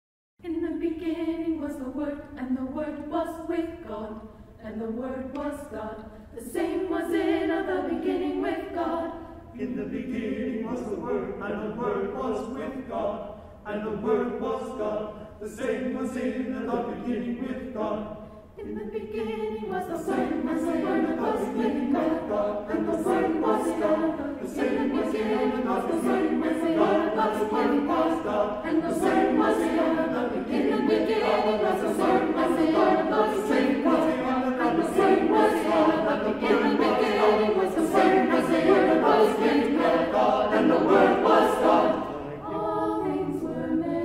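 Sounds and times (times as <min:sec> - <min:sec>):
mixed choir singing a cappella: 0:00.4 - 0:44.0.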